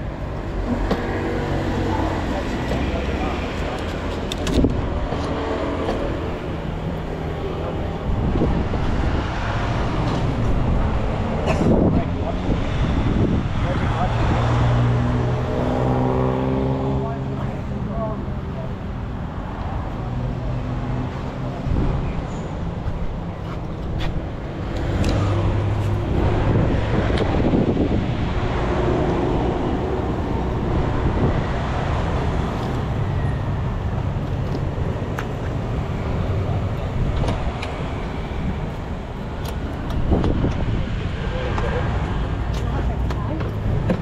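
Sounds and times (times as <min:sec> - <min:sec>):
traffic engines running: 0:00.0 - 0:44.0.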